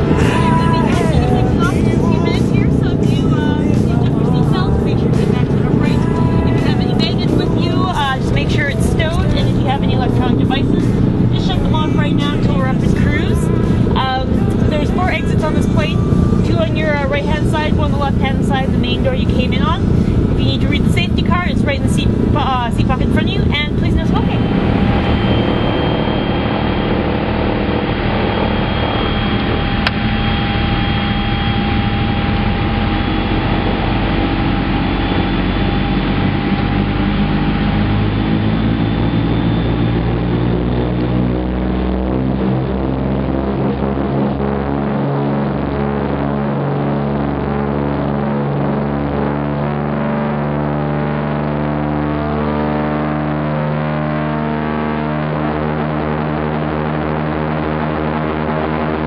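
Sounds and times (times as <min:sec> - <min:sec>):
propeller engines droning: 0:00.0 - 0:59.0.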